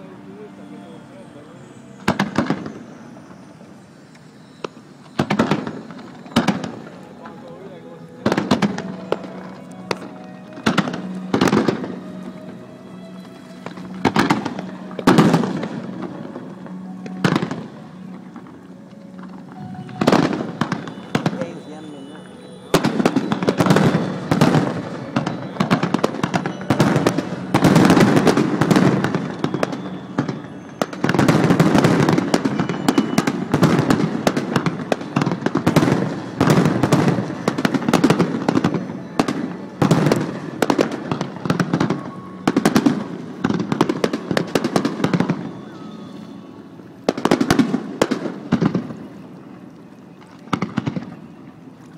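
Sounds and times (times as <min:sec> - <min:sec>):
fireworks crackling: 0:00.0 - 0:51.8
fireworks bursting: 0:01.5 - 0:49.3.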